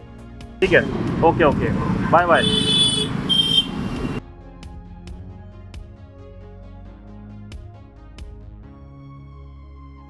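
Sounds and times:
street noise: 0.0 - 4.2.

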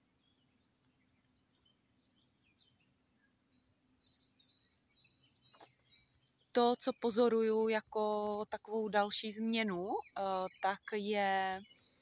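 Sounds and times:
distant songbirds chirping: 0.0 - 12.0.

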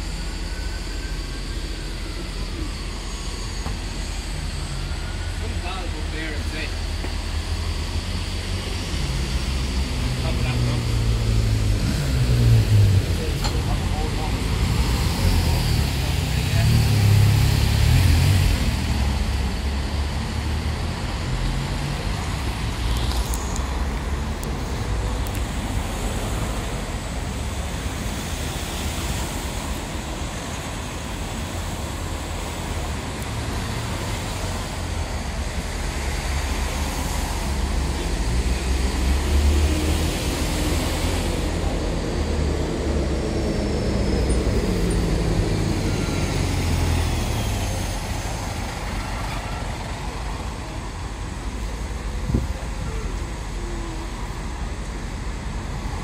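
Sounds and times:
heavy diesel truck engine: 0.0 - 56.0
street traffic: 0.0 - 56.0.

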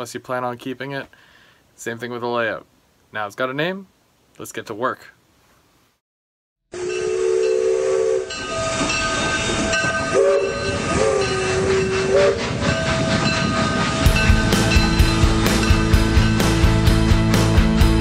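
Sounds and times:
steady rumbling hiss: 0.0 - 6.0
train whistle blasts: 6.7 - 14.4
rock music with steady beat: 14.0 - 18.0.

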